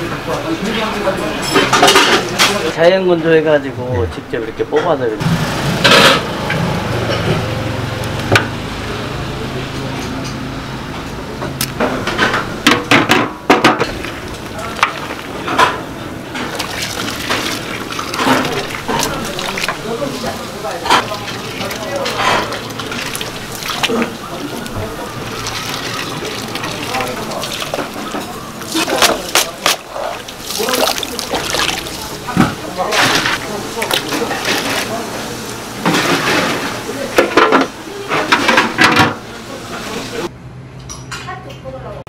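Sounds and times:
stirring and sloshing in water: 13.8 - 35.2
water running off strainer: 13.8 - 37.2.

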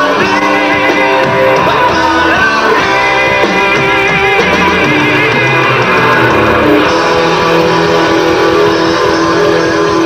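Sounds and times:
distorted electric guitars: 0.0 - 10.0
hard rock band playing: 0.0 - 10.0.

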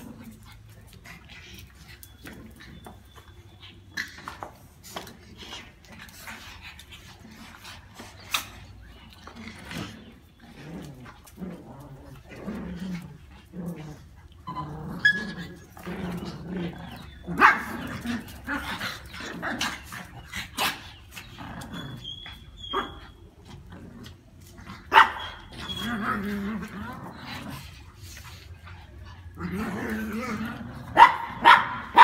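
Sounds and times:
small dogs growling: 0.0 - 32.0
sharp dog barks: 31.0 - 32.0.

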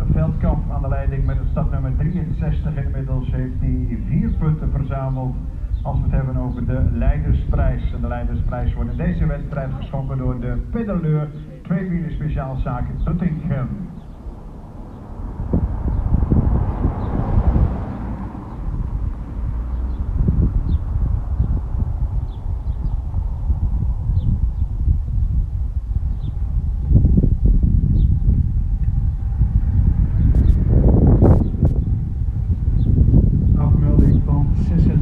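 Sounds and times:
wind buffeting microphone: 0.0 - 35.0
car passing by: 13.8 - 22.0.

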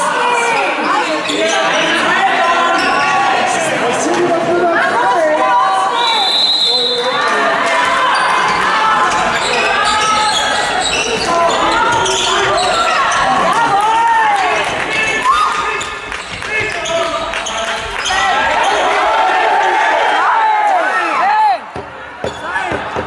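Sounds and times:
players shouting and calling: 0.0 - 23.0
handball bouncing on hall floor: 7.8 - 18.2, 21.7 - 23.0.

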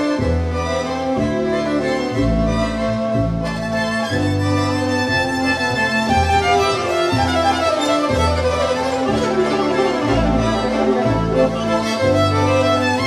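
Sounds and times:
sustained bass line: 0.0 - 13.0
violin bowed: 0.0 - 13.0.

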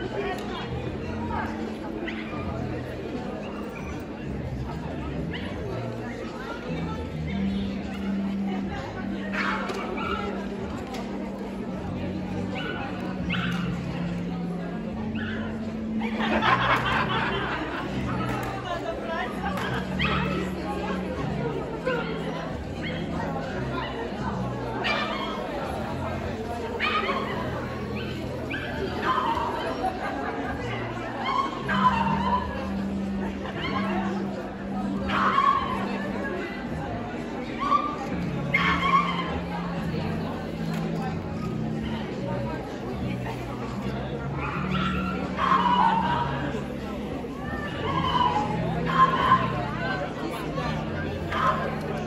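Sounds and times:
chatter of many people: 0.0 - 52.0.

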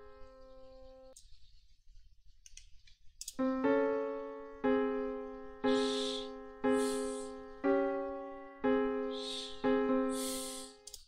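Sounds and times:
piano keyboard melody: 0.0 - 1.2, 3.4 - 10.9
sharp clicks: 2.4 - 3.5, 10.8 - 11.0.

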